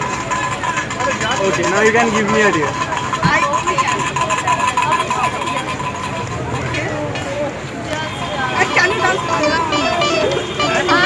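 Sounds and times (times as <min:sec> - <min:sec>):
road traffic: 0:00.0 - 0:11.0
voices talking: 0:00.0 - 0:11.0.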